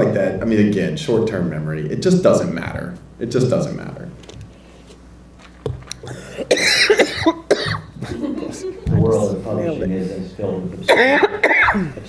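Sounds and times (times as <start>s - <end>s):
person coughing: 6.0s - 8.0s, 10.9s - 12.0s.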